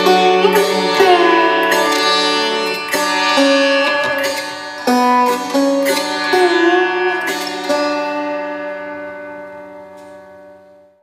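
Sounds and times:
sitar strokes ringing: 0:00.0 - 0:10.6.

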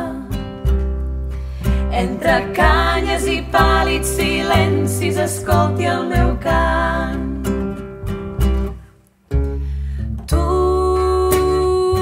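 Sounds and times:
acoustic guitar chords: 0:00.0 - 0:12.0
plucked double bass: 0:00.0 - 0:12.0.

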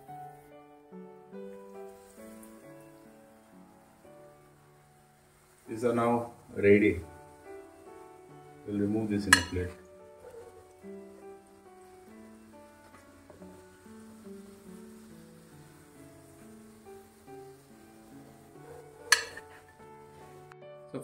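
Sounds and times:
quiet slow background music: 0:00.0 - 0:21.0
food deep-frying in oil: 0:01.4 - 0:20.5.

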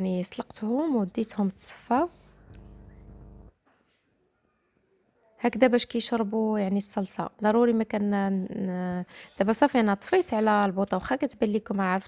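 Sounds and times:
low steady hum: 0:02.2 - 0:03.5.

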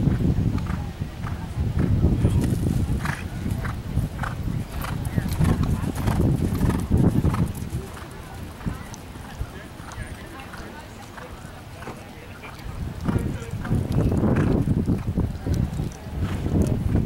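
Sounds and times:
horse hoofbeats on sand: 0:00.0 - 0:17.0.

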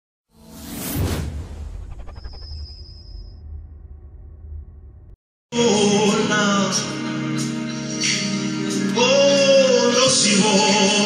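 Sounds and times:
whoosh sound effect: 0:00.4 - 0:04.0.

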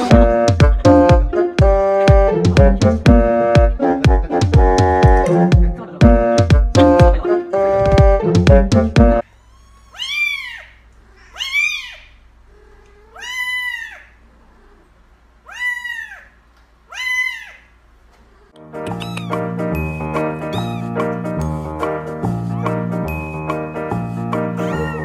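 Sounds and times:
keyboard and bass music: 0:00.0 - 0:09.2, 0:18.6 - 0:25.0
kitten meowing: 0:09.3 - 0:14.1, 0:15.5 - 0:16.3, 0:16.9 - 0:17.7, 0:18.9 - 0:19.4, 0:20.4 - 0:21.0, 0:24.6 - 0:25.0.

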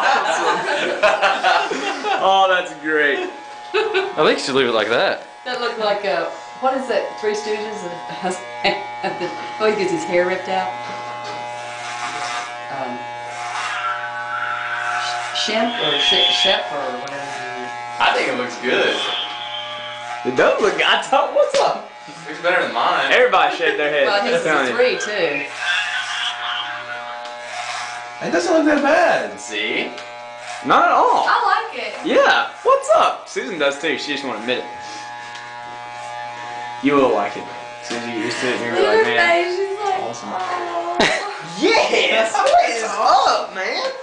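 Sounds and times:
electric hair clippers buzzing: 0:00.4 - 0:44.0.

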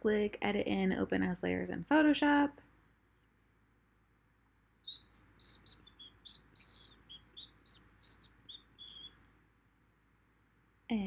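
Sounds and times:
small bird chirping: 0:04.8 - 0:09.4.

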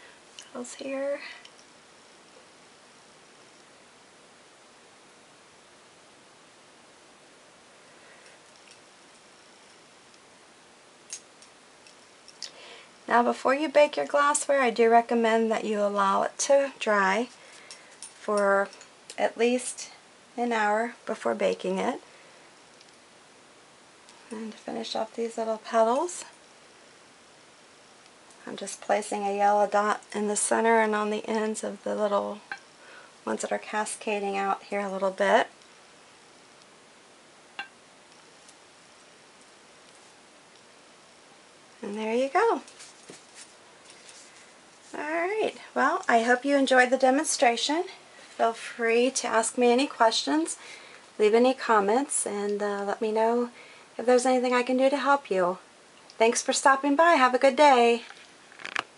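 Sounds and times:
room hiss: 0:00.0 - 0:58.9
soft hiss: 0:00.0 - 0:58.9.

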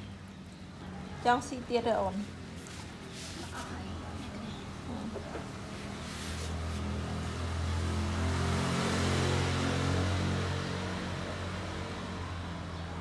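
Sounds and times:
vehicle engine passing by: 0:00.9 - 0:13.0.

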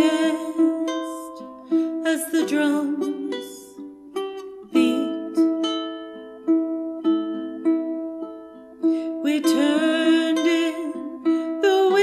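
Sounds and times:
ukulele chords ringing: 0:00.0 - 0:12.0.

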